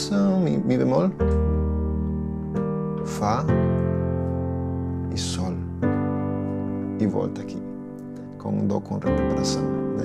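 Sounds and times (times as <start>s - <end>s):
electronic piano chord: 0.0s - 10.0s.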